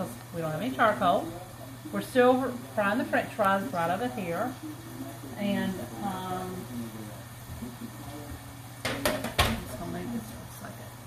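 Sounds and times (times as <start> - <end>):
fries deep-frying in hot oil: 0.0 - 11.0.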